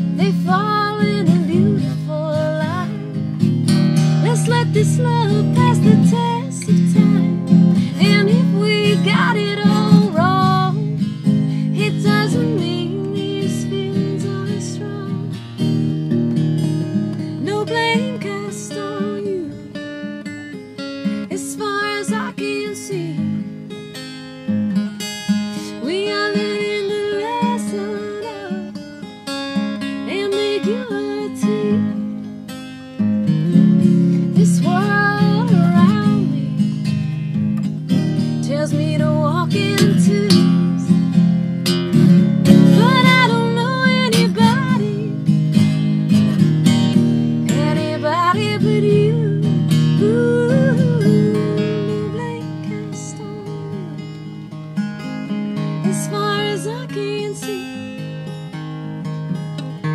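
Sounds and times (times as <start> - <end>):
woman singing: 0.0 - 3.4, 4.0 - 15.4, 16.7 - 19.9, 21.3 - 23.5, 25.5 - 29.1, 29.8 - 32.1, 33.5 - 36.8, 38.4 - 41.2, 42.4 - 45.4, 47.4 - 54.4, 55.8 - 58.1
acoustic guitar strumming: 0.0 - 59.9.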